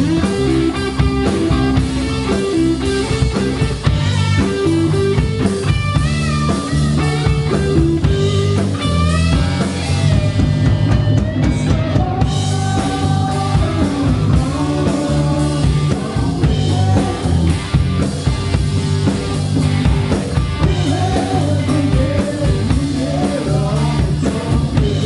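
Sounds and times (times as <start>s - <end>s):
bass guitar: 0.0s - 25.0s
drum kit: 0.0s - 25.0s
electric guitar: 0.0s - 25.0s.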